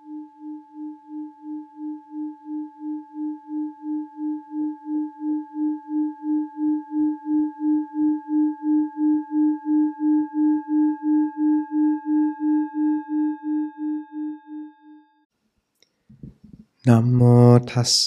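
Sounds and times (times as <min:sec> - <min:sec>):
singing bowl tone: 0:00.0 - 0:15.3.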